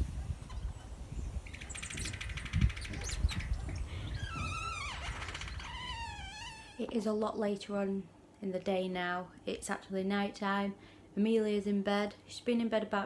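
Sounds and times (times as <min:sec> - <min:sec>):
birds chirping and singing: 0:00.3 - 0:04.8.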